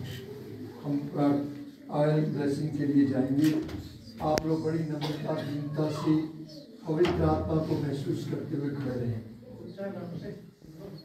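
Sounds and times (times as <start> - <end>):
low voice murmuring prayer: 0.0 - 11.0.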